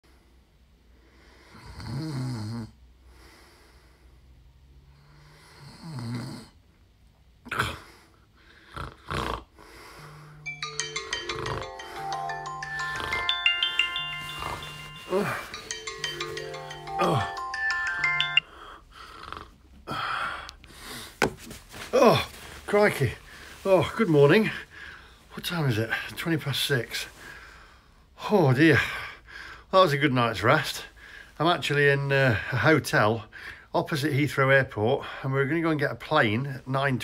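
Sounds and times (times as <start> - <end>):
sharp snorts: 8.6 - 9.6
phone alarm chiming tune: 10.5 - 18.5.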